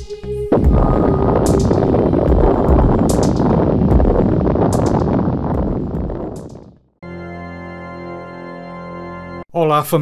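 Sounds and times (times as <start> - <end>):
explosion rumble with crackling: 0.5 - 7.0.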